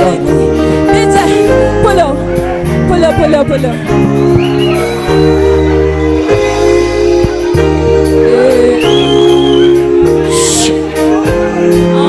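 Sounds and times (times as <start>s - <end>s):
amplified live band music: 0.0s - 12.0s.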